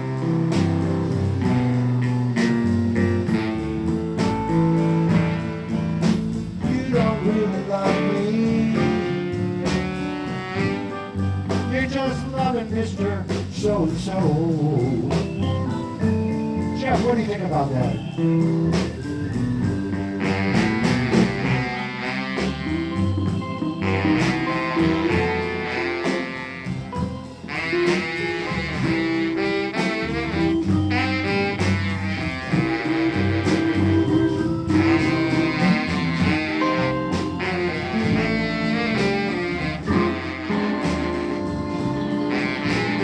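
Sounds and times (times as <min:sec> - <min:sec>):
drums: 0:00.0 - 0:43.0
electric guitar: 0:00.0 - 0:43.0
saxophone lead: 0:00.0 - 0:43.0
upright bass: 0:00.0 - 0:43.0.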